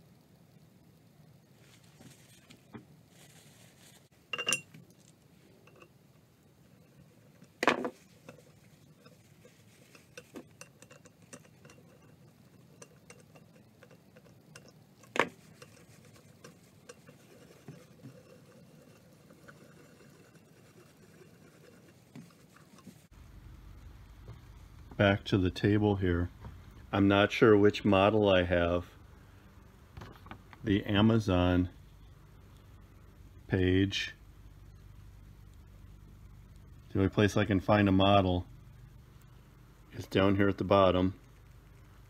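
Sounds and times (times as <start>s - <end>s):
quiet rustling: 1.4s - 33.4s
metal tools clinking: 4.3s - 4.8s.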